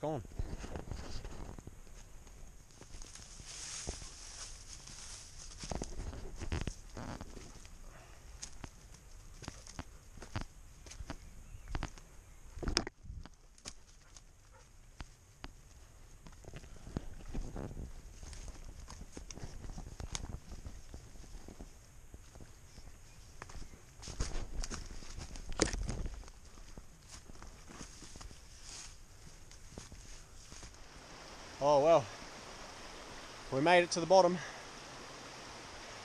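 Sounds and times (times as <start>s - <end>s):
footsteps on bush track: 0.2s - 34.6s
undergrowth brushing clothing: 0.3s - 11.9s, 12.6s - 36.0s.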